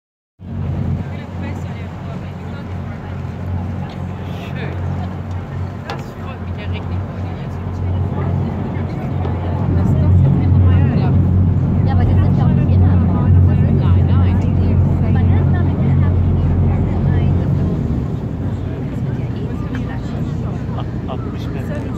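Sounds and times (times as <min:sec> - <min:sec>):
boat engine droning: 0:00.4 - 0:21.9
people chattering: 0:00.5 - 0:21.9.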